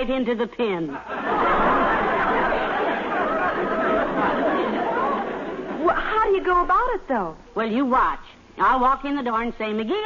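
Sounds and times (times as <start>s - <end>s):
studio audience laughing: 1.0s - 6.0s.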